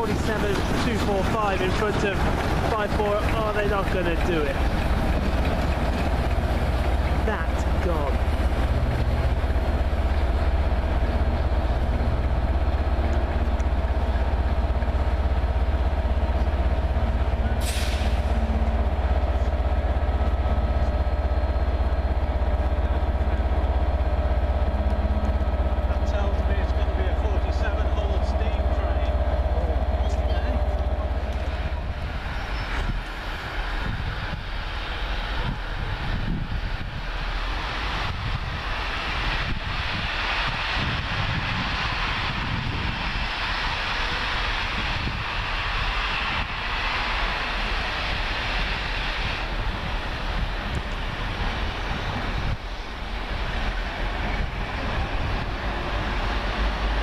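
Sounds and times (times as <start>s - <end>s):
diesel locomotive engine drone: 0.0s - 57.0s
short sharp air hiss: 17.6s - 18.4s.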